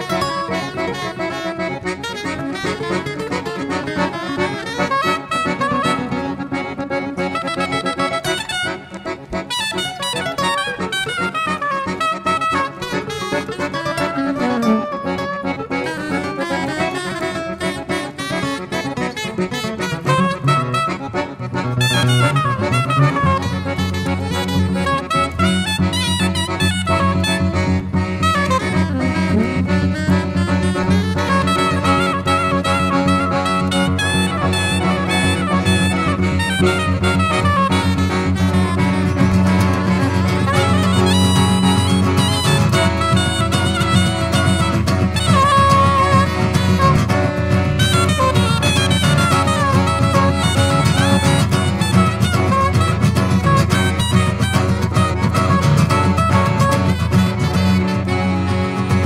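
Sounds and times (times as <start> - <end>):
button accordion: 0.0 - 59.0
soprano saxophone: 0.0 - 59.0
acoustic guitar: 12.4 - 20.9, 28.0 - 59.0.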